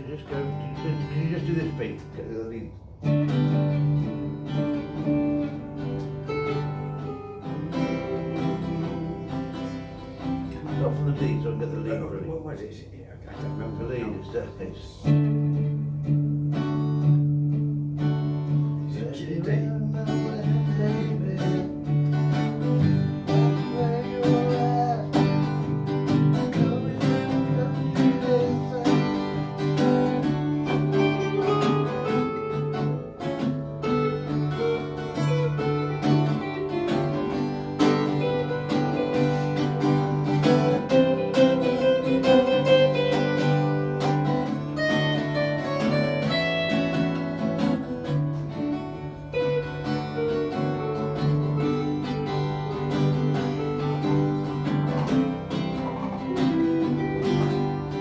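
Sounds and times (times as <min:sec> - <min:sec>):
picked guitar melody: 0:00.0 - 0:58.0
strummed acoustic guitar chords: 0:00.0 - 0:58.0.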